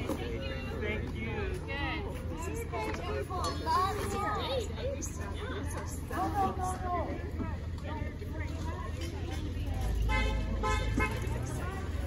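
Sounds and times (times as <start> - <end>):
car horn tooting: 10.1 - 11.3.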